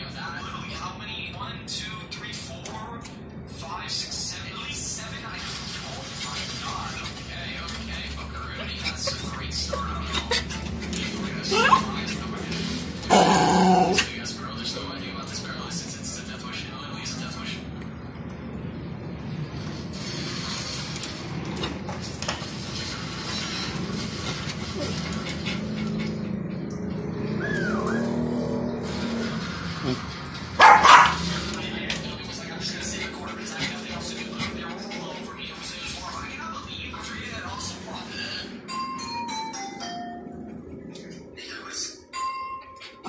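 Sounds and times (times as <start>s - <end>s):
dog growling: 13.0s - 14.1s
small dog barking: 30.6s - 31.3s.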